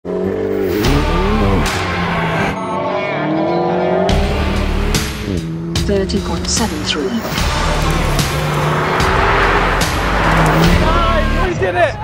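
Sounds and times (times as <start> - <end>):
sports car engine revving: 0.1 - 11.5
background music: 0.1 - 12.0.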